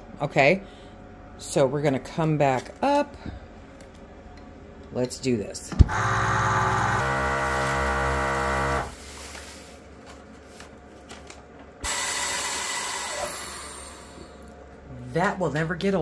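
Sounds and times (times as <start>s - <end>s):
vacuum pump humming: 5.7s - 9.3s, 11.8s - 14.4s
air hissing into chamber: 11.8s - 14.4s.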